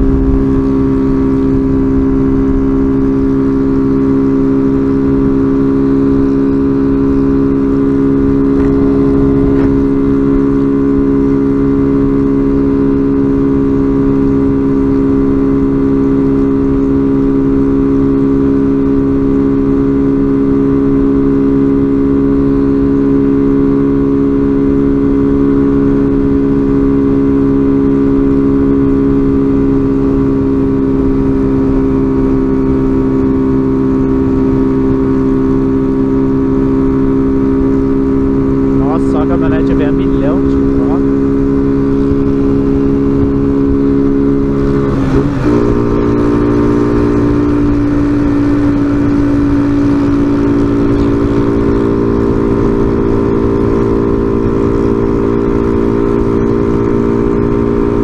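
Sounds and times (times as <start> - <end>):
wind rumbling on microphone: 0.0 - 3.9, 6.2 - 12.4, 37.4 - 58.0
motorcycle engine running: 0.0 - 58.0.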